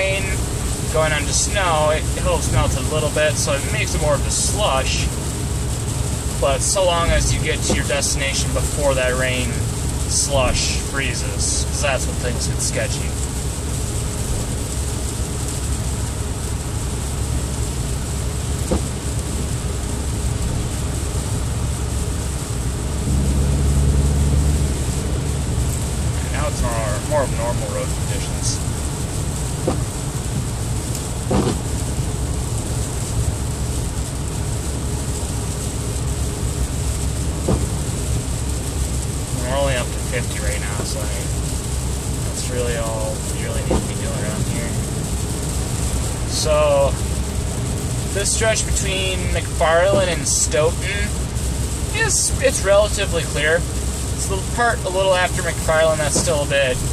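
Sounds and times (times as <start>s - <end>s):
car road rumble: 0.0s - 56.9s
tyres hissing on wet road: 0.0s - 56.9s.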